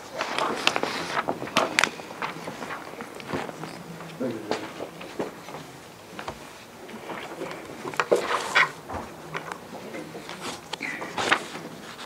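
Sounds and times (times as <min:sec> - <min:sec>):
faint steady hum: 0:00.0 - 0:12.0
footsteps: 0:00.0 - 0:12.0
papers rustling: 0:00.0 - 0:12.0.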